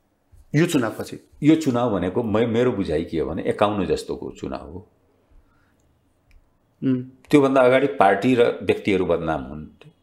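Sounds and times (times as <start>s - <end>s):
man speaking: 0.5s - 4.9s, 6.8s - 10.0s.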